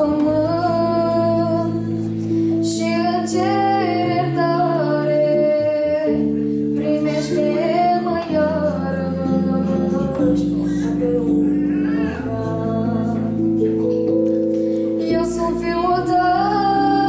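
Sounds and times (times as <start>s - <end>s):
woman singing into a microphone: 0.0s - 14.0s, 14.9s - 17.0s
guitar accompaniment: 0.0s - 17.0s.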